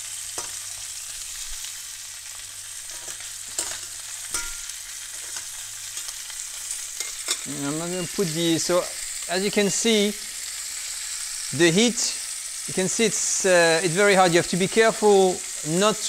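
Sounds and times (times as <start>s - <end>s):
meat sizzling in butter and oil: 0.0s - 16.0s
metal tongs clicking on pan: 0.3s - 0.8s, 2.9s - 7.5s.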